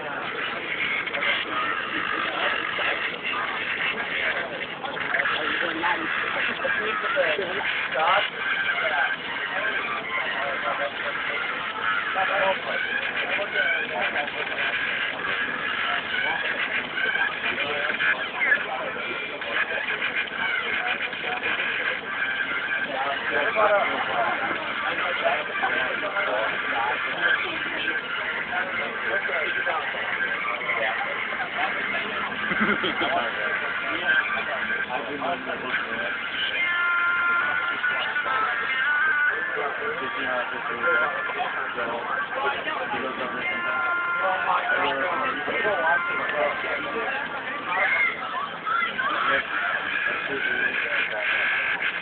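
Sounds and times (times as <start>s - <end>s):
babble of passengers talking: 0.0s - 52.0s.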